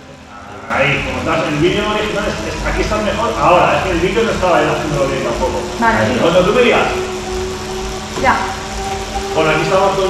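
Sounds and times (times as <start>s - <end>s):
bike trainer humming: 0.0s - 10.0s.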